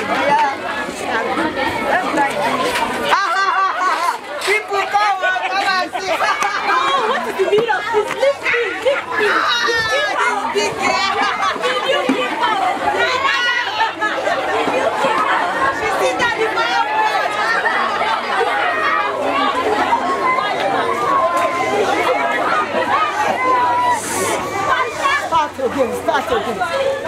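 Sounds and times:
children chattering: 0:00.0 - 0:27.0.

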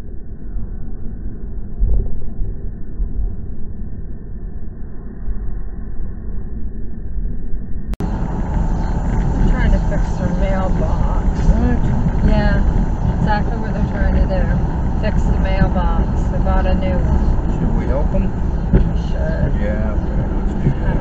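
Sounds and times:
car road and engine rumble: 0:08.0 - 0:21.0
people talking: 0:08.0 - 0:21.0.

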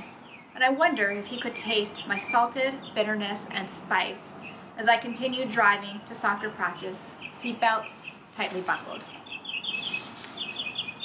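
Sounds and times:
high chirping: 0:09.0 - 0:11.0
paper pages rustling: 0:09.7 - 0:10.9.

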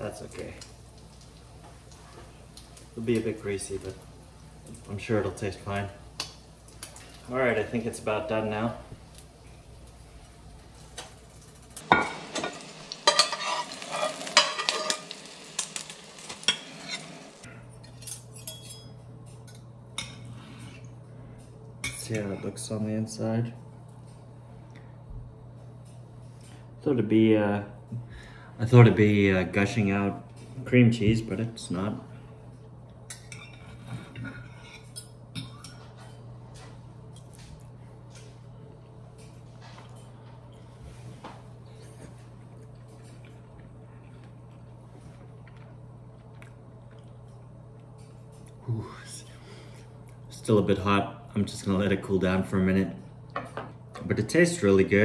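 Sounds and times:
oil sizzling in a pan: 0:00.0 - 0:07.8, 0:09.0 - 0:17.5
fork and knife clinking on plate: 0:13.0 - 0:15.0, 0:17.8 - 0:20.3
spatula scraping a frying pan: 0:13.0 - 0:15.2.

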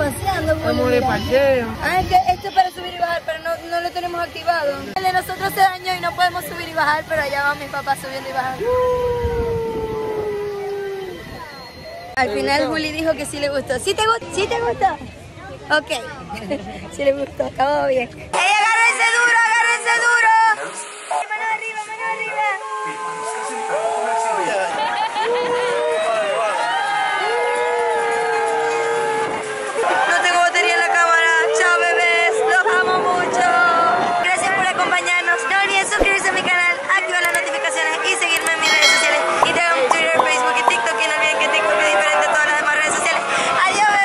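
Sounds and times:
people whooping: 0:08.6 - 0:12.2, 0:22.6 - 0:30.1
people laughing: 0:24.5 - 0:25.9
wind buffeting microphone: 0:32.6 - 0:37.2.

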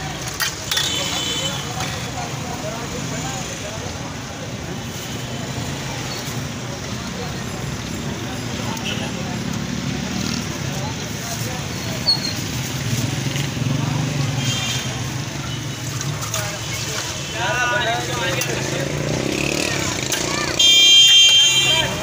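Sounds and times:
street traffic: 0:00.0 - 0:22.0.

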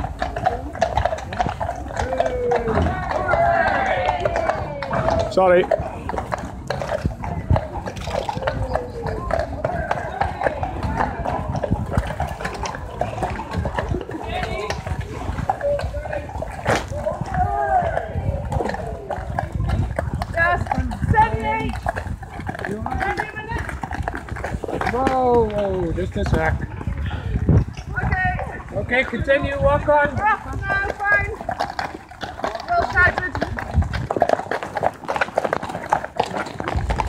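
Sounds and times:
horse hooves clip-clopping on pavement: 0:00.0 - 0:37.0
people talking: 0:24.8 - 0:31.4, 0:32.7 - 0:33.5.

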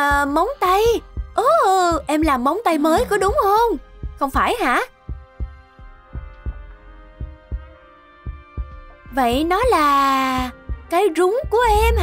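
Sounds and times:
low heartbeat-like thumps: 0:00.0 - 0:12.0.

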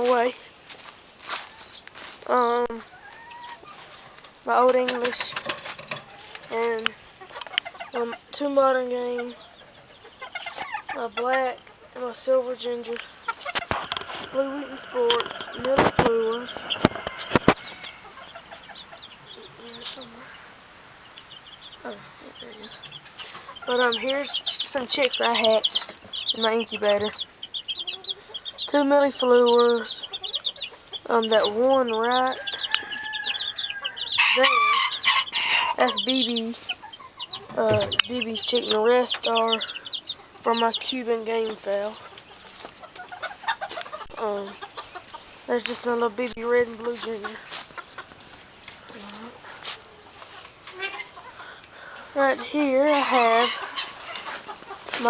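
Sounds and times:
chickens clucking: 0:00.0 - 0:55.0
rapid high chirping: 0:09.0 - 0:47.1
low gliding calls: 0:13.0 - 0:26.6.

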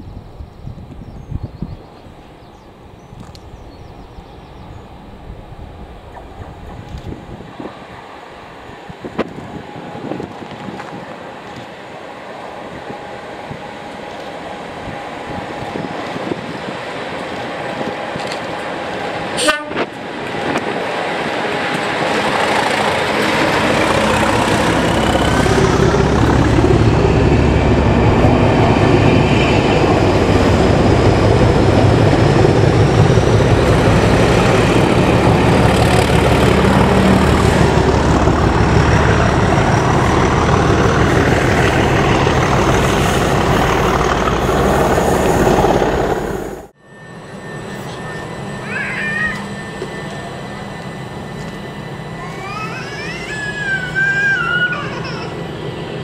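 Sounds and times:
diesel locomotives passing: 0:00.0 - 0:56.0.

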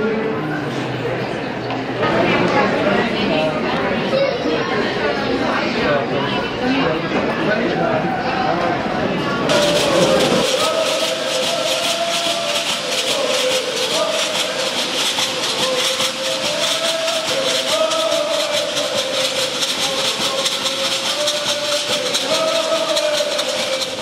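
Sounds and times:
shell leg rattles shaking: 0:09.5 - 0:24.0
voices chanting: 0:09.5 - 0:24.0.

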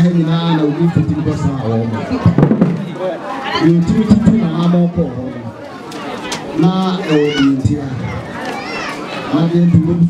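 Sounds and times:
man speaking: 0:00.0 - 0:02.0, 0:02.8 - 0:05.5, 0:09.3 - 0:10.0
crowd chatter: 0:00.0 - 0:10.0.

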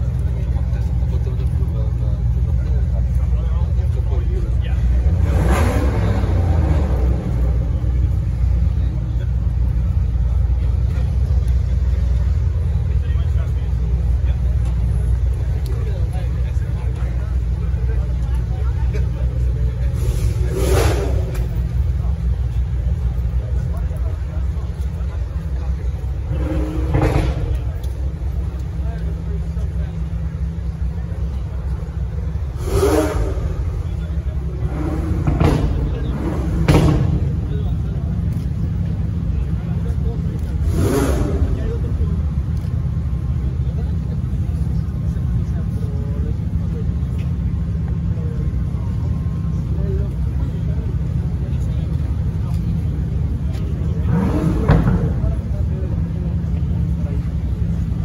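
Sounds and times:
car engine revving: 0:00.0 - 0:58.0
people talking: 0:00.0 - 0:58.0.

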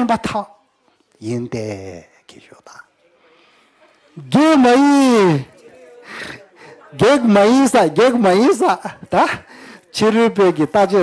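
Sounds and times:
man speaking: 0:00.0 - 0:00.6, 0:01.2 - 0:03.0, 0:04.2 - 0:11.0.

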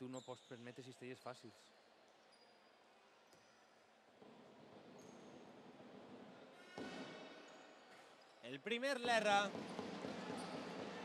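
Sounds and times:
faint high-pitched squeaks: 0:00.0 - 0:03.8.

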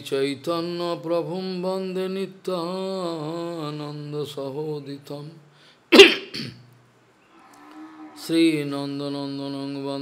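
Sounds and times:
man clearing his throat: 0:05.9 - 0:06.7
faint held vocal tone: 0:07.2 - 0:10.0.

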